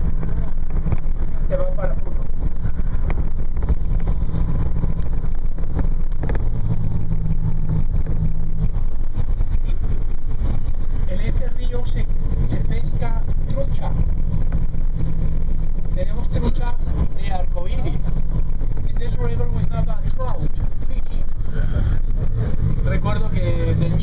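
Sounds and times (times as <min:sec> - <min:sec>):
engine and road noise inside vehicle: 0:00.0 - 0:24.0.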